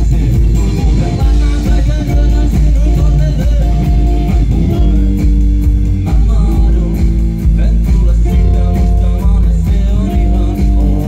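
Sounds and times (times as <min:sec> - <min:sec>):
bass guitar: 0:00.0 - 0:11.0
drum kit: 0:00.0 - 0:11.0
electric guitar: 0:00.0 - 0:11.0
live rock band playing: 0:00.0 - 0:11.0.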